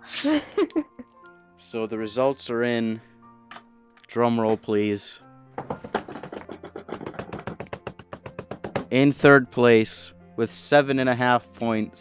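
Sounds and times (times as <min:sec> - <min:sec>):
quiet background music: 0:00.0 - 0:12.0.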